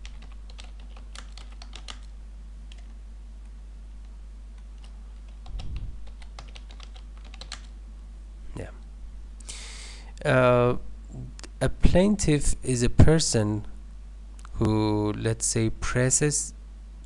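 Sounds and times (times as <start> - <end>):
computer keyboard keys clicking: 0.0 - 2.1, 2.7 - 2.9, 4.6 - 7.7
steady low hum: 0.0 - 17.0.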